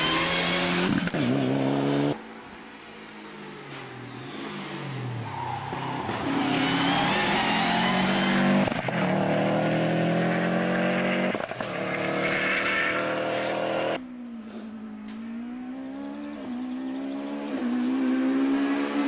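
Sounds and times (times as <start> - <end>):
rally car engine at full throttle: 0.0 - 2.2, 3.7 - 19.0.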